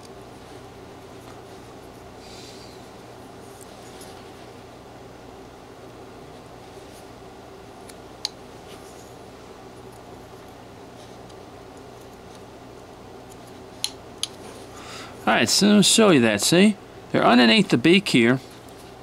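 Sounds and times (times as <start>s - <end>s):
low background hum: 0.0s - 19.0s.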